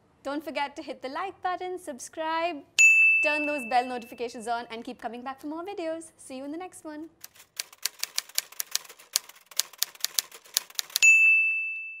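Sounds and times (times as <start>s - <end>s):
typewriter keystrokes: 7.2s - 11.0s
typewriter carriage-return bell: 7.6s - 12.0s.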